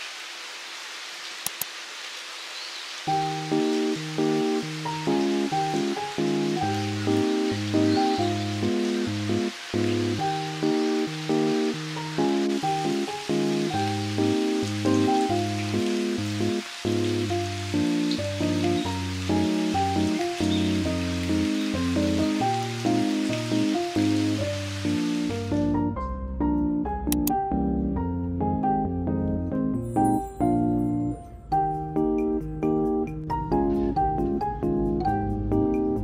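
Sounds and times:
rain falling: 0.0 - 25.8
gentle instrumental music: 3.1 - 36.0.

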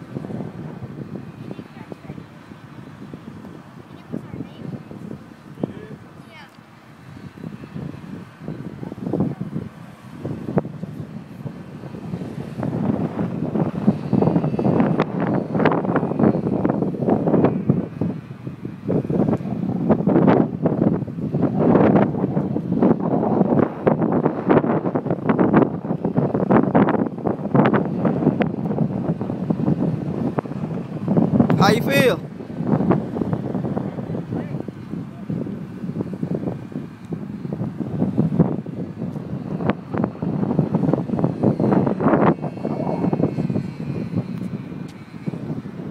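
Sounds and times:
gusty wind buffeting microphone: 0.0 - 45.9.

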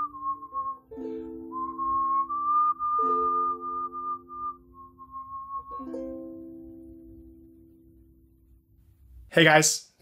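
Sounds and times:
man whistling a melody: 0.0 - 6.6
strummed ukulele: 0.0 - 8.3.

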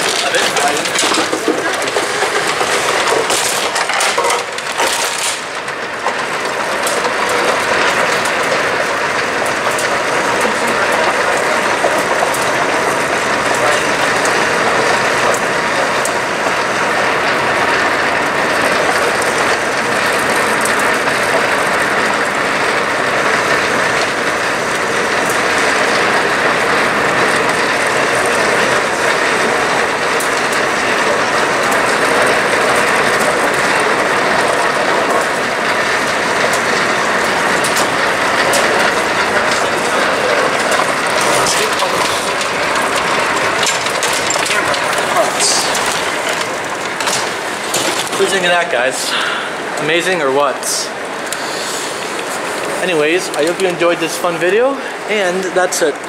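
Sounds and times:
shopping cart rattling on escalator: 0.0 - 56.0.

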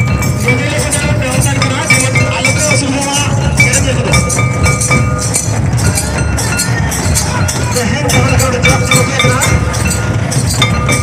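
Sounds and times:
hand drums beating fast: 0.0 - 11.0
high held melody line: 0.0 - 11.0
metallic clinking: 0.0 - 11.0.

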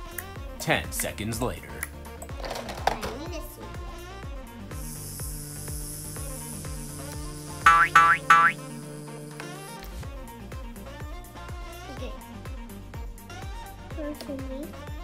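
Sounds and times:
background music with steady beat: 0.0 - 15.0
rising cartoon boing: 7.7 - 8.6.

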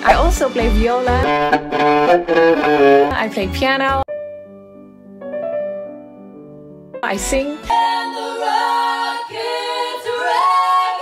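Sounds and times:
women singing in harmony: 7.5 - 11.0.

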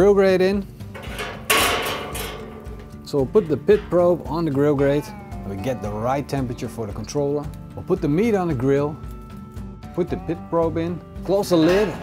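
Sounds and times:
metal grate clanking in drum: 0.8 - 5.1, 11.3 - 12.0.

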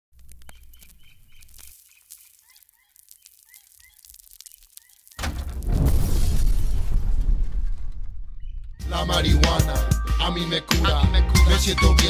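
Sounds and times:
birds chirping: 0.2 - 5.2
loud low crash: 5.2 - 8.8
music: 8.8 - 12.0.

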